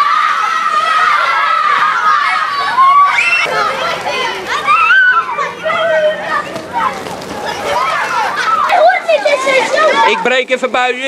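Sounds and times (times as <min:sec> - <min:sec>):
children shouting and squealing: 0:00.0 - 0:10.4.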